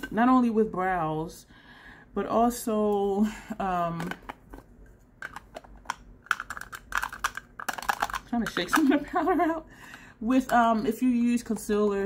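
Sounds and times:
powder jar clicking and tapping: 0:05.2 - 0:09.0.

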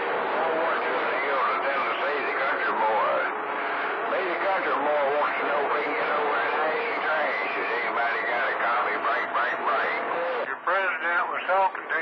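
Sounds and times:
radio static hiss: 0:00.1 - 0:12.0
voices over radio: 0:00.2 - 0:12.0.

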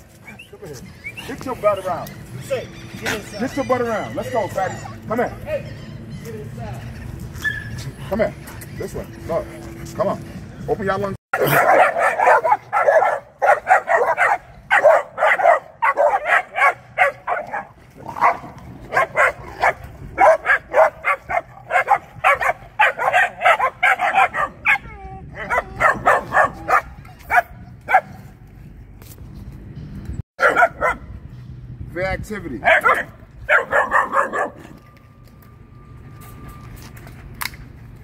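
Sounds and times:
puppies barking: 0:00.3 - 0:06.3, 0:11.4 - 0:28.2, 0:30.4 - 0:31.2, 0:32.6 - 0:34.7.

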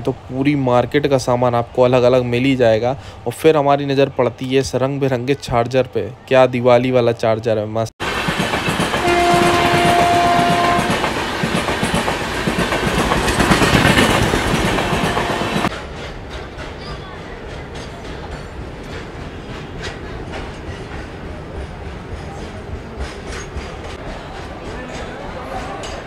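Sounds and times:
wheels clicking over rail joints: 0:08.0 - 0:24.0
rumble and clatter of train coaches: 0:08.0 - 0:26.0
train horn blast: 0:09.0 - 0:11.1, 0:14.8 - 0:15.7.

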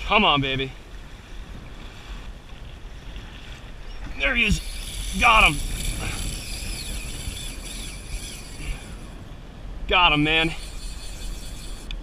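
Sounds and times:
choppy water washing: 0:00.0 - 0:12.0
wind buffeting microphone: 0:00.0 - 0:12.0.

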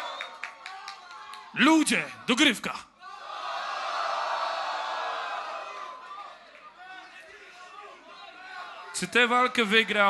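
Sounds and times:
audience cheering and shouting: 0:03.0 - 0:10.0.

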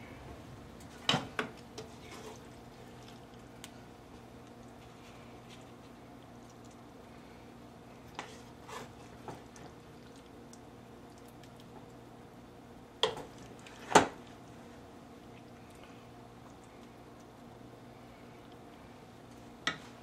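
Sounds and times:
spoon scraping skillet: 0:01.8 - 0:02.6, 0:08.2 - 0:09.3.

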